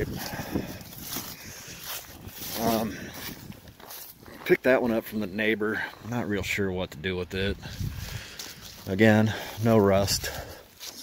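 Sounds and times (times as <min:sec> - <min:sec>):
footsteps through frosty grass: 0:00.0 - 0:06.4, 0:07.4 - 0:11.0.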